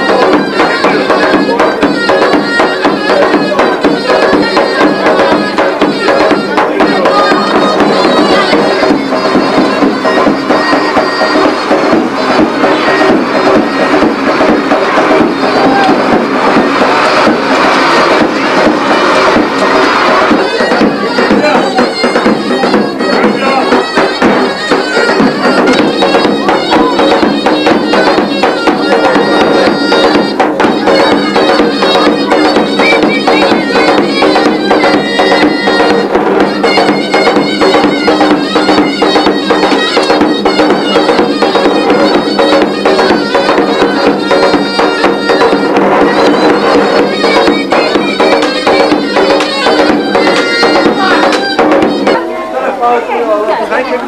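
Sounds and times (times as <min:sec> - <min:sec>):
shrill reed wind instrument: 0:00.0 - 0:52.6
fast drum beats: 0:00.0 - 0:54.0.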